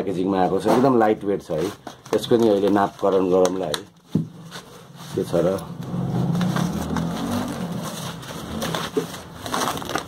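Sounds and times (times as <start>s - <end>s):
plastic bag crinkling: 1.5s - 3.8s, 4.4s - 10.0s.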